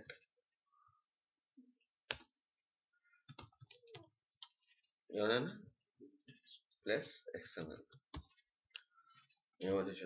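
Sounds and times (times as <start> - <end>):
computer keyboard keys clicking: 3.3 - 4.6.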